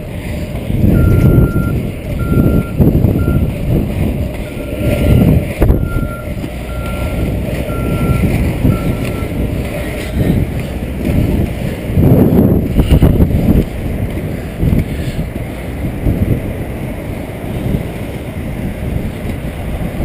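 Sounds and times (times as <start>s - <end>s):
skate wheels rolling on asphalt: 0.0s - 20.0s
wind on microphone: 0.0s - 20.0s
reversing alarm beeps: 0.9s - 3.5s, 4.4s - 9.4s.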